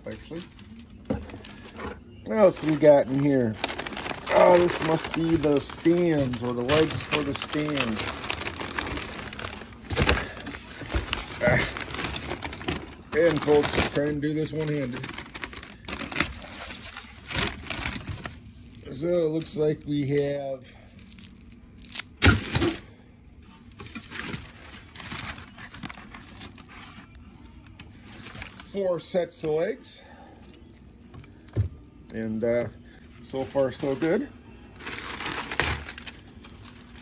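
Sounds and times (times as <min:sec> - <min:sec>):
packing paper rustling: 0:00.0 - 0:22.7, 0:23.4 - 0:37.0.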